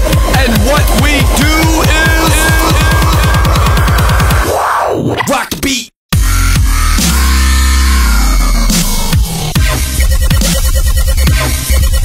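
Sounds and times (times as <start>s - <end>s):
electronic dance music: 0.0s - 5.5s, 6.1s - 12.0s.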